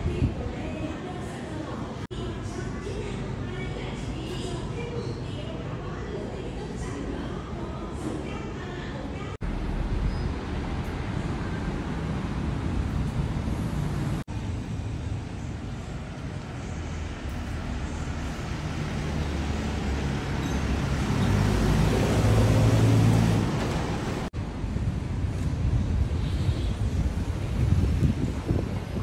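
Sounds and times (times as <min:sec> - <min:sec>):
road traffic: 0:09.4 - 0:29.0
vehicle engine hum passing: 0:16.7 - 0:24.3.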